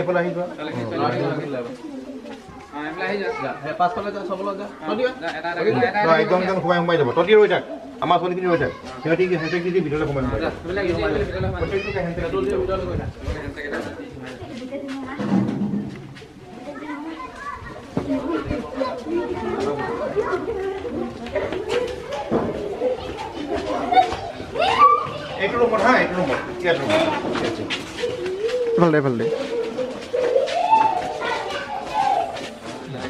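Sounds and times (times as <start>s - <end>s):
children chattering: 0.0s - 33.0s
people talking: 10.0s - 33.0s.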